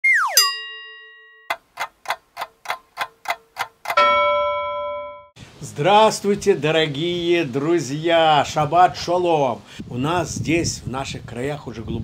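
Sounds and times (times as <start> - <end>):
falling whistle glide: 0.0 - 0.4
bright ringing ding: 0.4 - 1.6, 4.0 - 5.4
clock-like ticks: 1.5 - 4.1.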